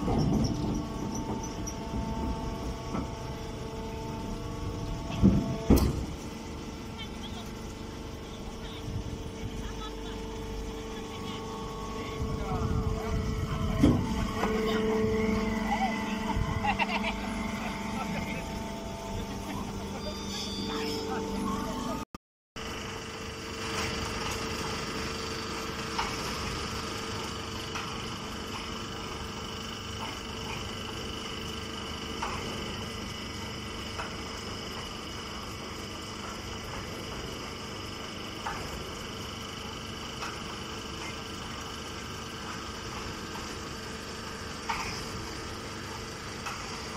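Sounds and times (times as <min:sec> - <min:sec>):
baling machinery humming: 0:00.0 - 0:22.0, 0:22.6 - 0:46.9.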